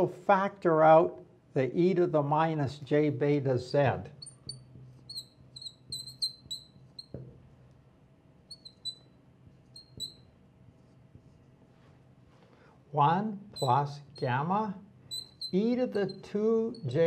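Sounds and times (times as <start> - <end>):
faint steady hum: 0.0 - 17.0
marker squeaking on glass: 4.1 - 7.2, 8.4 - 11.4, 13.6 - 17.0.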